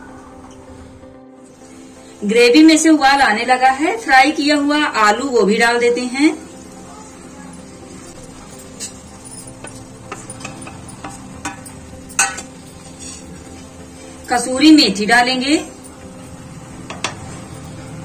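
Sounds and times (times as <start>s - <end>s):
gravy boiling in a pan: 4.8s - 18.0s
food pieces clinking into pan: 8.6s - 13.3s
wooden spatula knocking pan: 9.6s - 13.3s.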